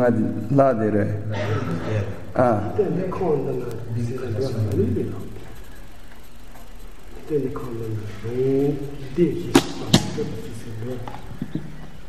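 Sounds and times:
sharp click: 9.5 - 10.3.

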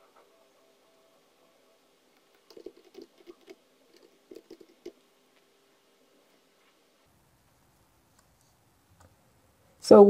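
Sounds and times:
faint keyboard typing: 2.2 - 5.0.

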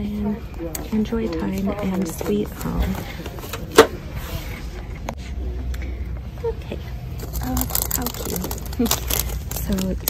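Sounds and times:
low store hum: 0.0 - 10.0
plastic blister pack clack: 7.2 - 10.0.

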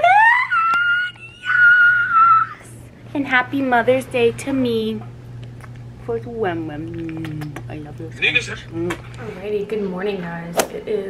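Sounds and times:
woman squealing: 0.0 - 2.8.

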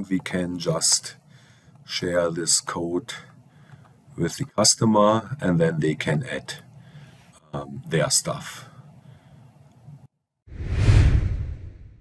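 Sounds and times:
bass whoosh with rushing hiss: 10.5 - 12.0.

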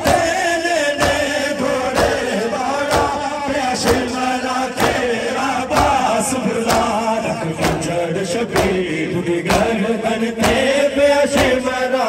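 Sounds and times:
men chanting a lament: 0.0 - 12.0
rhythmic chest-beating strikes: 0.0 - 12.0.

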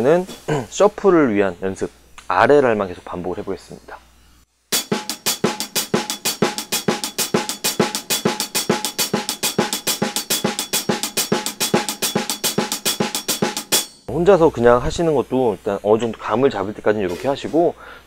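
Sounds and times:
snare drum triplet strokes: 4.7 - 14.1.

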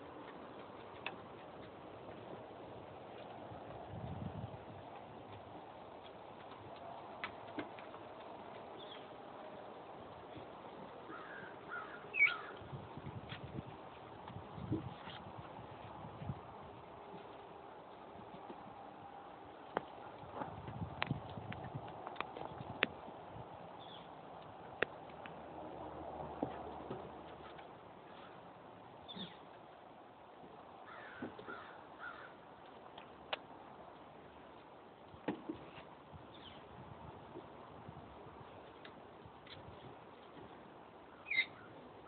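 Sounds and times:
bird squawks: 11.1 - 12.6, 41.2 - 41.7.

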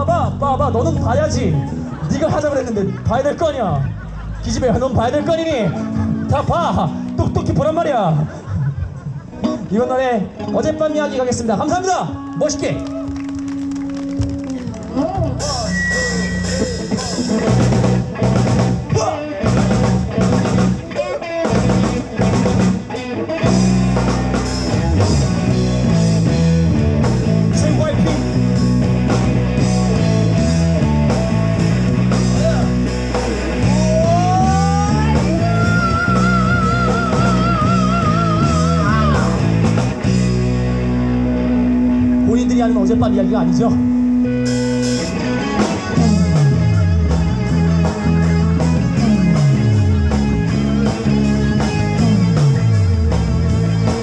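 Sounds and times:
bass guitar sliding down: 0.0 - 8.5, 9.2 - 54.0
electric guitar: 0.0 - 54.0
live rock band playing: 0.0 - 54.0
drum kit steady beat: 14.2 - 40.8, 44.5 - 54.0.

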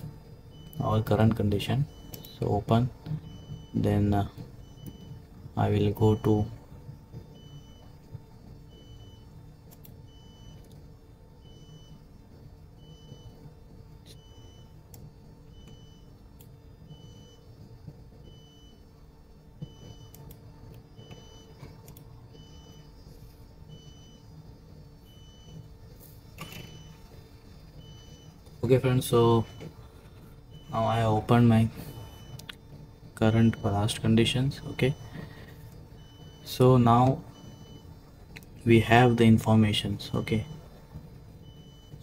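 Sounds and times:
machinery hum: 0.0 - 42.0.

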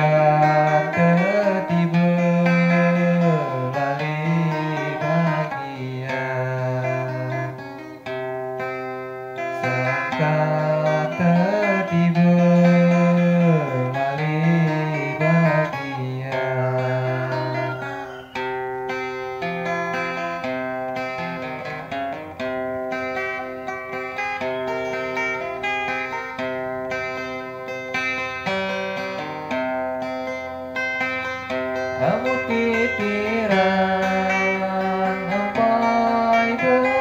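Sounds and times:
man singing ornamented line: 0.0 - 8.0, 9.4 - 18.5, 31.8 - 37.0
acoustic guitar picking a melody: 0.0 - 37.0.

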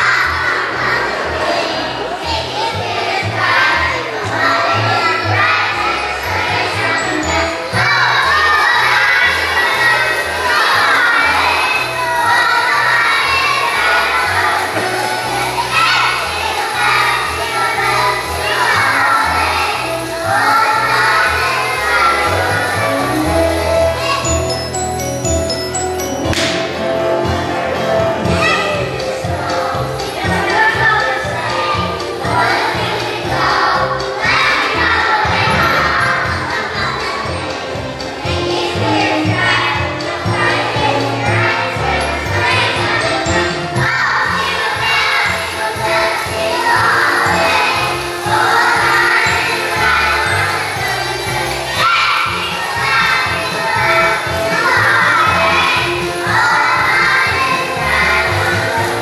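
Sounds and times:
children singing loudly: 0.0 - 25.4, 27.6 - 59.0
music with bass line: 0.0 - 59.0.

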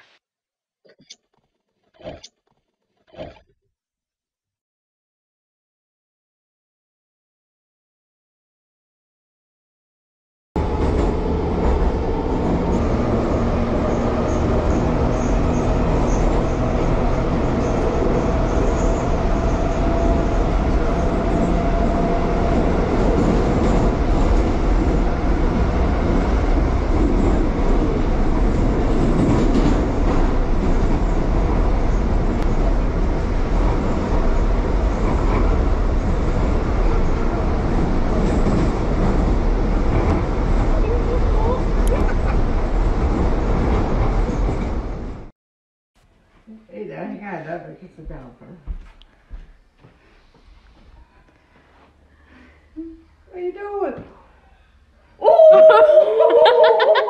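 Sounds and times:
metro train wheels rumbling: 10.6 - 45.3.

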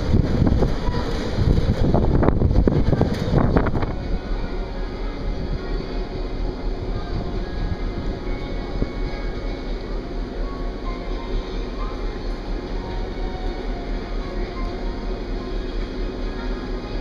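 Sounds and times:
wind buffeting microphone: 0.0 - 9.5
faint music: 0.0 - 17.0
steady low hum: 0.0 - 17.0.

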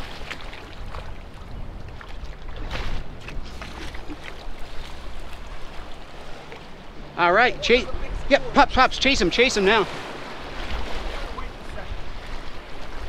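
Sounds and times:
water splashing and sloshing: 0.0 - 13.0
steady low rumble: 4.9 - 9.4.

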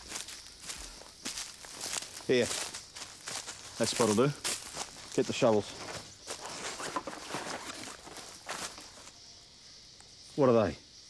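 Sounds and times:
footsteps crunching on dry leaves: 0.0 - 9.1.

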